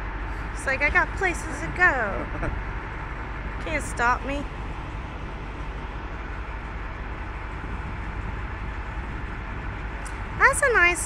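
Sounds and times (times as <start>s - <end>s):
low rumble of vehicle engines: 0.0s - 11.0s.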